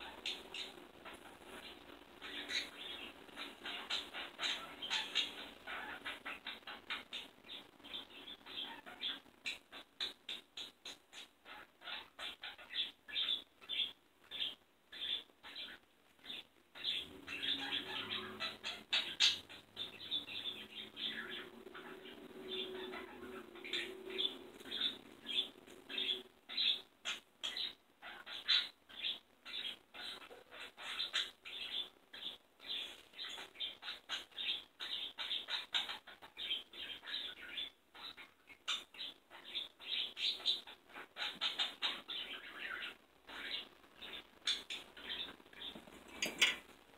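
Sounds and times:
budgerigars chirping: 0.0s - 46.7s.

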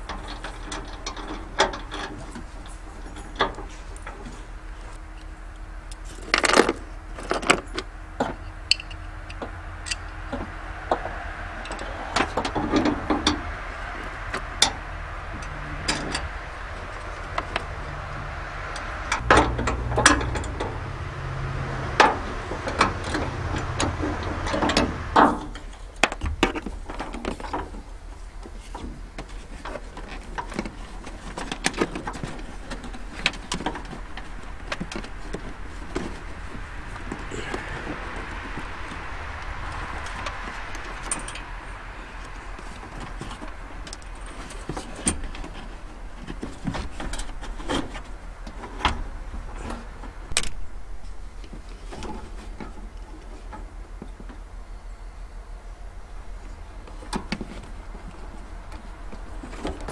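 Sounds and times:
low hum: 0.0s - 51.4s.

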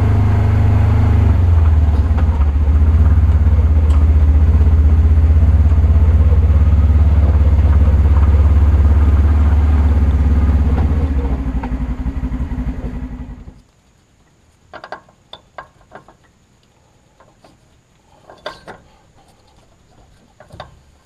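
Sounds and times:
utility vehicle engine rumbling: 0.0s - 13.7s.

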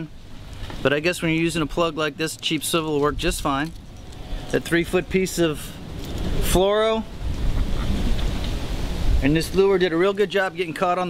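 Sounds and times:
wind buffeting microphone: 2.7s - 10.0s.

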